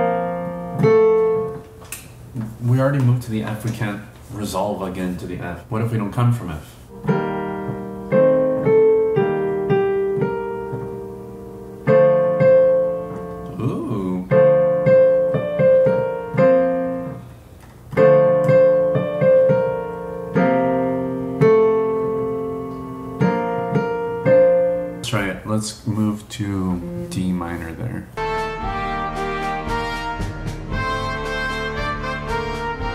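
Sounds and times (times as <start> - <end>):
digital piano chords: 0.0 - 1.8, 6.9 - 25.6, 26.6 - 32.9.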